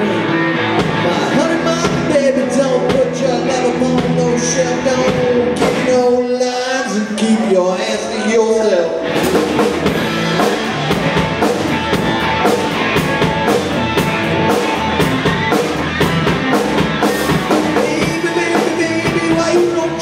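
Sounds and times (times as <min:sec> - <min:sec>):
distorted electric guitar: 0:00.0 - 0:07.2, 0:08.0 - 0:20.0
bass guitar: 0:00.0 - 0:20.0
drum kit with cymbal crashes: 0:09.1 - 0:20.0.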